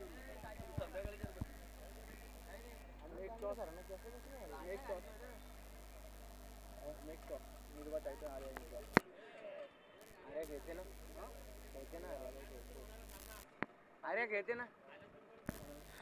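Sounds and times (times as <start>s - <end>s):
low electrical hum: 0.0s - 9.0s, 10.0s - 13.5s, 15.5s - 16.0s
faint indistinct voices: 0.0s - 13.9s, 14.7s - 16.0s.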